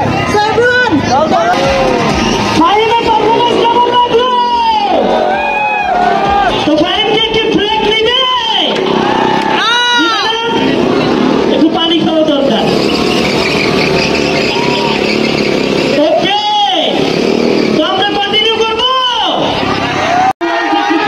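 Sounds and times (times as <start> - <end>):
motorcycle engines revving: 0.0 - 20.3
constant noisy din: 0.0 - 21.0.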